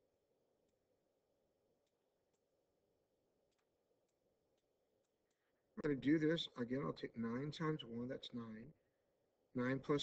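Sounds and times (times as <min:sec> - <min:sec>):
tiny ticks: 0:03.4 - 0:05.5
man speaking: 0:05.8 - 0:08.7.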